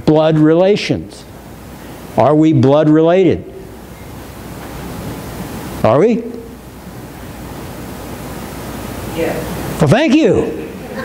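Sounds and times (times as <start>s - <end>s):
man speaking: 0.0s - 1.3s, 2.2s - 3.6s, 5.8s - 6.6s, 9.3s - 10.6s
room noise hiss: 0.0s - 11.0s.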